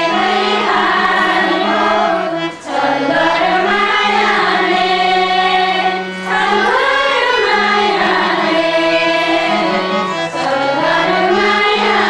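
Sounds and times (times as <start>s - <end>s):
harmonium steady notes: 0.0s - 12.0s
voices singing: 0.0s - 12.0s.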